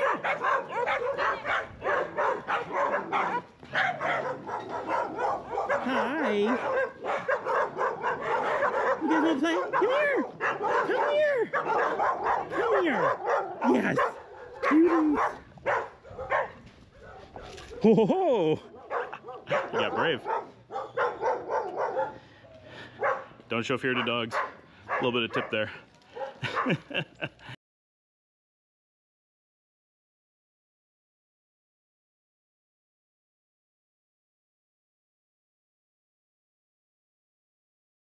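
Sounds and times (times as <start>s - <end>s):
small dogs yapping: 0.0s - 18.0s, 18.7s - 23.3s.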